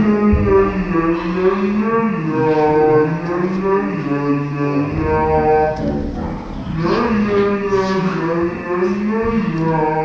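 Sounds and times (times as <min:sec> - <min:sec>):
low droning voice-like tone: 0:00.0 - 0:10.0.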